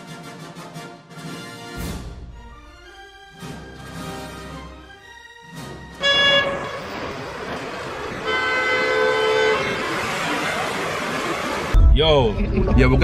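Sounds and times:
car horns honking: 5.9s - 11.3s
city street traffic: 6.0s - 11.8s.

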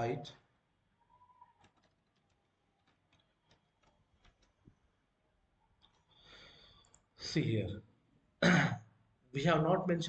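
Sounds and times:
computer keyboard keystrokes: 1.6s - 4.6s.

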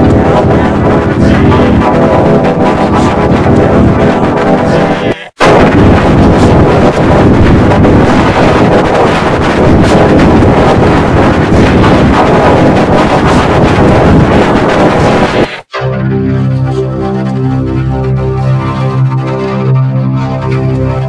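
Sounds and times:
distorted logo jingle: 0.0s - 18.2s
dense harsh noise: 0.0s - 21.0s.

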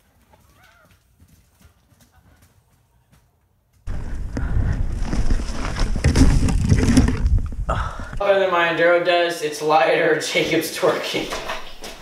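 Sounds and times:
mountain bike on rough dirt trail: 3.9s - 8.2s.

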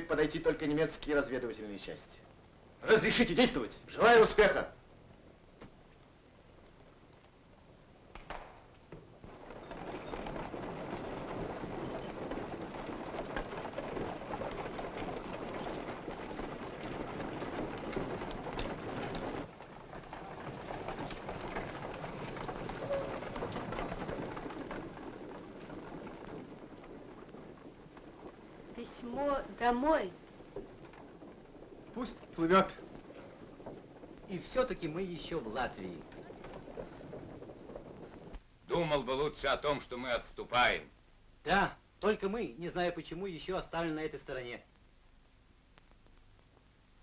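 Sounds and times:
cart wheels rolling: 0.0s - 5.0s, 8.5s - 40.9s
footsteps: 8.1s - 39.6s.

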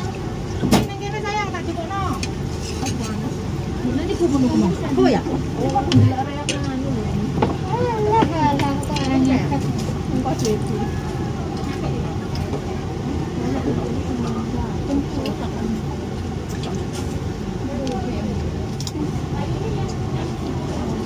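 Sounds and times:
low background rumble: 0.0s - 21.0s
people talking: 0.0s - 21.0s.

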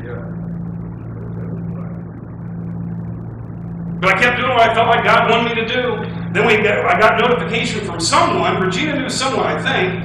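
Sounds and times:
room noise: 0.0s - 10.0s
steady low hum: 0.0s - 10.0s.

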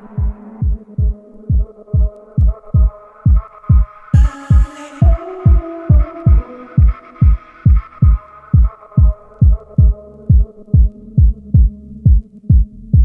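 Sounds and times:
deep kick drum beat: 0.0s - 13.0s
low bass hum: 0.0s - 13.0s
sustained synth chords: 2.8s - 11.1s.

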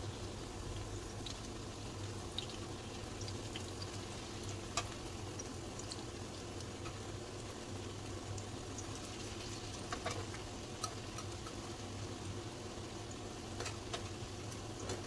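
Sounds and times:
patties sizzling in oil: 0.0s - 15.0s.

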